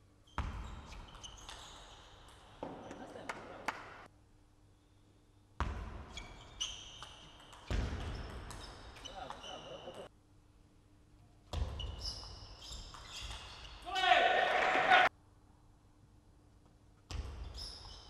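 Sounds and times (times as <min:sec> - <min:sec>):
shoes squeaking on floor: 0:00.2 - 0:03.1, 0:06.1 - 0:10.1, 0:11.5 - 0:13.9, 0:17.4 - 0:18.0
people shouting and cheering: 0:13.9 - 0:15.1.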